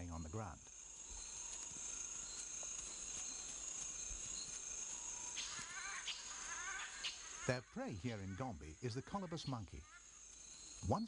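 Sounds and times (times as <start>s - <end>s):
high insect drone: 0.0s - 11.0s
warbling animal calls: 1.2s - 11.0s.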